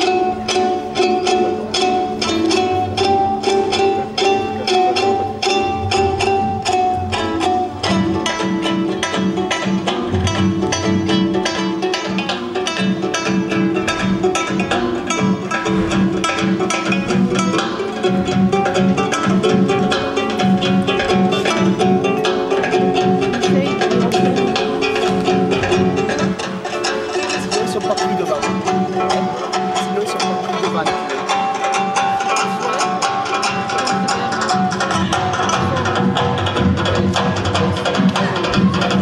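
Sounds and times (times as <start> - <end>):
hand drum beating: 0.0 - 39.0
low pulsing beat: 0.0 - 39.0
plucked and bowed strings: 0.0 - 39.0.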